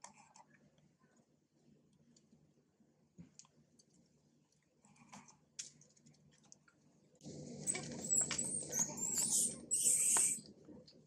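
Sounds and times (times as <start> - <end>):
monkeys screaming: 7.7 - 10.4.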